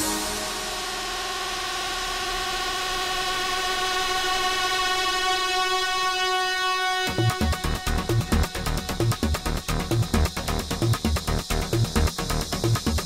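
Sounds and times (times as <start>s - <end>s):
sustained synthesizer chord: 0.0s - 10.9s.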